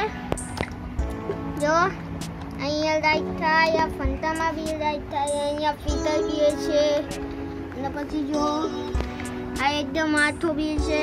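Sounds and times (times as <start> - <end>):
high child-like voice singing: 2.6 - 7.2, 7.8 - 11.0.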